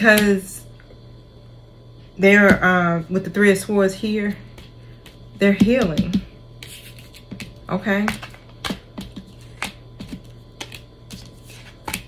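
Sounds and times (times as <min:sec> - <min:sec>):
cards shuffled on a tabletop: 0:06.6 - 0:12.0.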